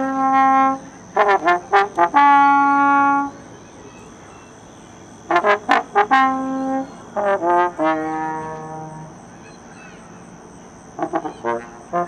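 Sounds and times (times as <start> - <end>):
faint high-pitched tone: 0.0 - 11.8.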